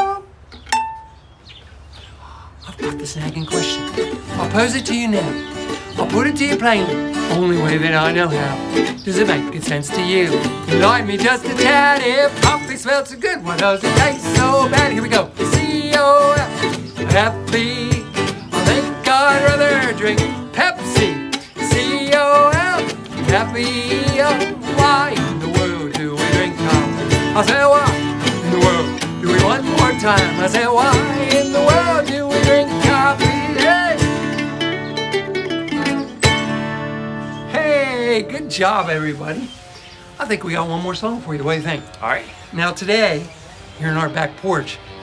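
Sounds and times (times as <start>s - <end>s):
ukulele and acoustic guitar strumming: 0.0s - 1.2s, 2.7s - 39.5s
man singing: 2.7s - 34.6s, 37.4s - 39.4s.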